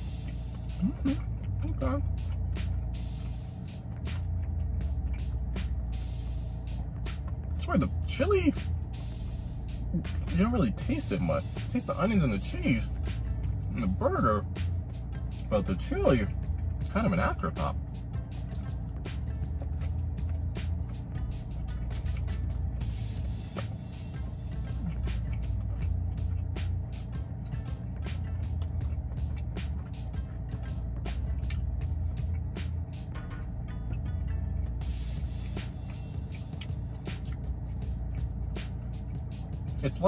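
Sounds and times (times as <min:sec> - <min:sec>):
man chewing crunchy food: 0:00.0 - 0:08.0, 0:12.3 - 0:40.0
background music: 0:00.0 - 0:40.0.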